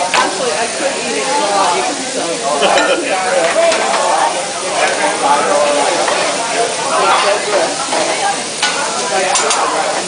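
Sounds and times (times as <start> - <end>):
food sizzling on a griddle: 0.0 - 10.0.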